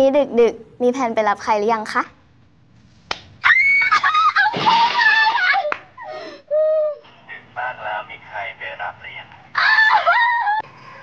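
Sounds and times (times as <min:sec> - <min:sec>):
sharp hand clap: 0:03.1 - 0:03.3
young women squealing and laughing: 0:03.4 - 0:06.2, 0:09.6 - 0:10.7.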